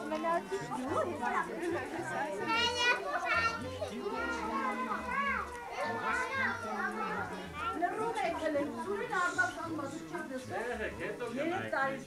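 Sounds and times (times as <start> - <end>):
children chattering and calling out: 0.0 - 12.0
child's high-pitched voice: 2.5 - 7.8.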